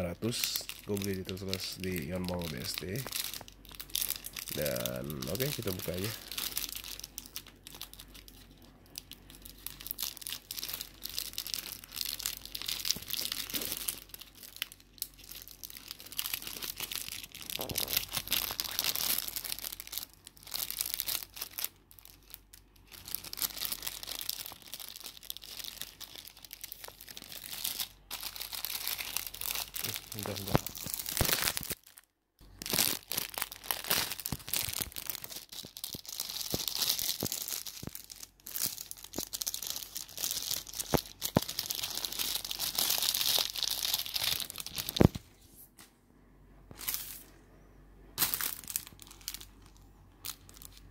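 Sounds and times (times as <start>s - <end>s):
plastic packaging crinkling and tearing: 0.0s - 45.2s, 46.7s - 47.3s, 48.2s - 50.9s.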